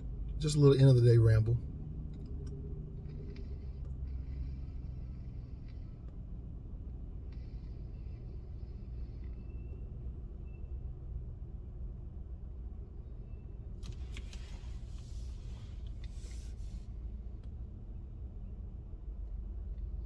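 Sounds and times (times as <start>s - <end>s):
car engine rumble from inside: 0.0s - 20.0s.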